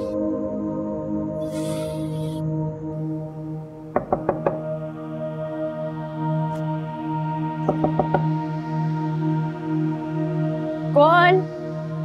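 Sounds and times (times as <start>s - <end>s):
soft background score music: 0.0s - 12.0s
knocks on a door: 3.9s - 4.7s, 7.7s - 8.3s.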